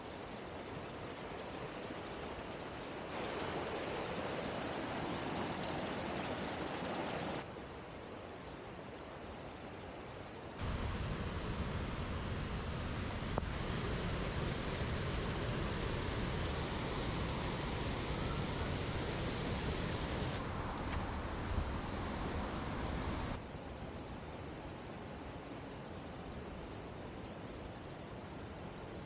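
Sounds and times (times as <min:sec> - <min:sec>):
small waterfall: 0:00.0 - 0:29.0
river rapids rushing: 0:10.6 - 0:23.4.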